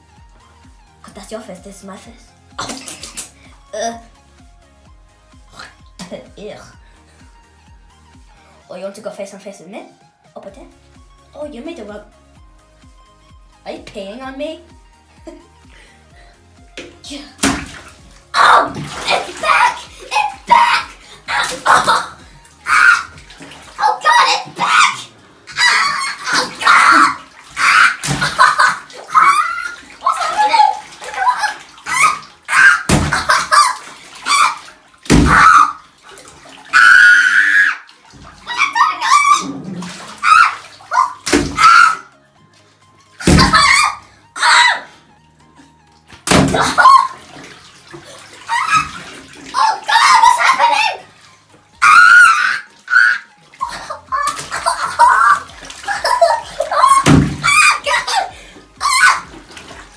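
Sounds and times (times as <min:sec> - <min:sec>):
water splashing in bathtub: 0:00.0 - 0:08.6, 0:10.7 - 0:59.9
child's voice: 0:03.7 - 0:04.1, 0:23.7 - 0:25.7, 0:30.0 - 0:32.1, 0:38.4 - 0:39.5, 0:49.5 - 0:51.2, 0:57.6 - 0:59.0
child laughing: 0:19.0 - 0:22.2, 0:23.8 - 0:34.6, 0:53.6 - 0:59.3.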